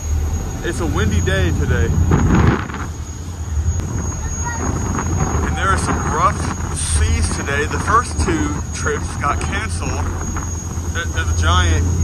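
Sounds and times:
ship engines rumbling: 0.0s - 12.0s
wind buffeting microphone: 0.0s - 12.0s.

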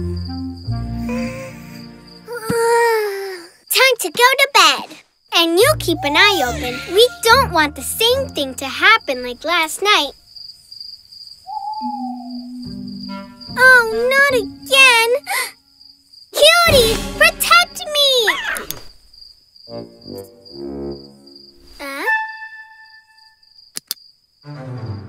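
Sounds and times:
crickets chirping: 0.0s - 24.5s
owl hooting: 11.4s - 13.8s
quick clicks: 23.7s - 24.0s.

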